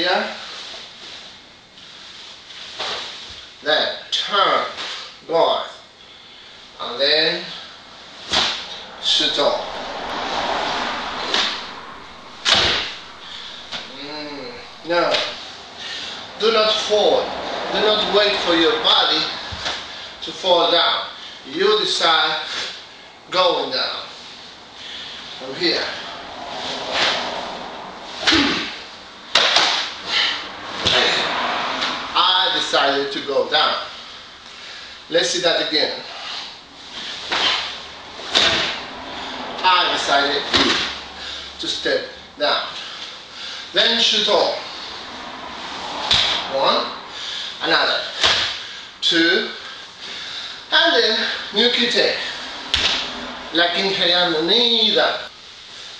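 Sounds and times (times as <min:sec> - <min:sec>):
sharp smack: 0:08.3 - 0:08.9, 0:12.4 - 0:14.1, 0:29.3 - 0:30.0, 0:37.3 - 0:38.8, 0:40.5 - 0:41.0, 0:46.0 - 0:46.4, 0:48.2 - 0:48.6, 0:52.7 - 0:53.1.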